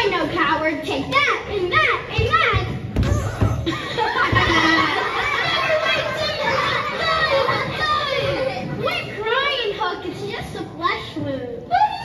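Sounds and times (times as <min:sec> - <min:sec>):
children shouting: 0:01.4 - 0:09.8.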